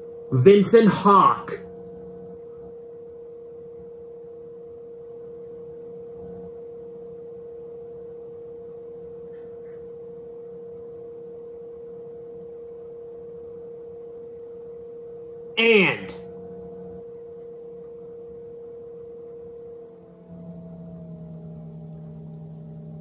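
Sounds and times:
steady electronic hum: 0.0s - 23.0s.

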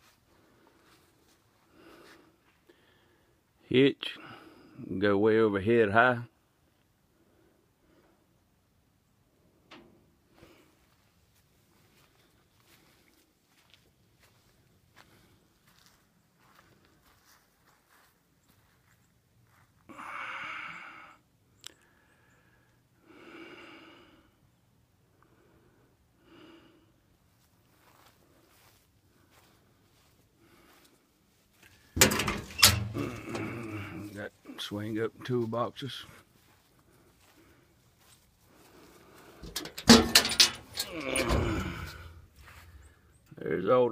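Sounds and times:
metal toolbox door clanking: 32.0s - 33.5s, 39.4s - 42.3s.

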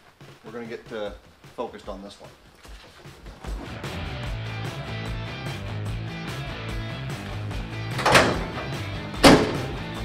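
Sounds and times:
background music: 0.0s - 10.0s
tailgate slammed shut: 7.9s - 9.9s
dull thump: 8.0s - 10.0s.

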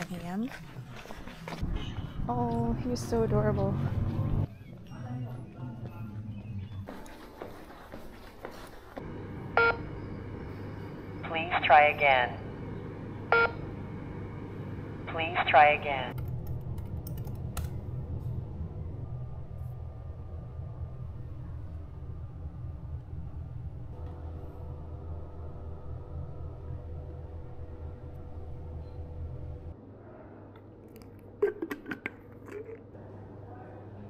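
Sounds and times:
low room hum: 0.0s - 34.0s.

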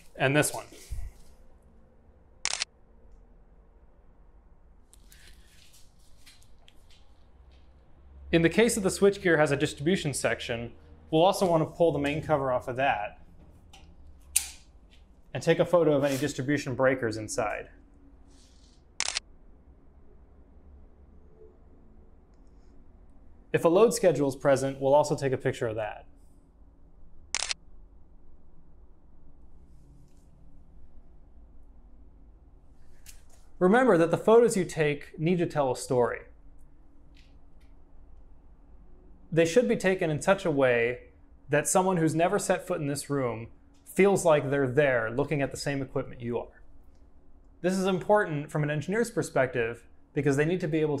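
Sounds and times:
camera shutter click: 2.4s - 2.7s, 19.0s - 19.2s, 27.3s - 27.6s.

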